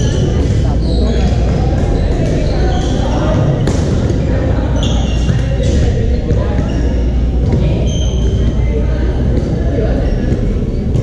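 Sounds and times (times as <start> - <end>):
sneaker squeaks on hardwood: 0.0 - 8.7
scattered voices: 0.0 - 11.0.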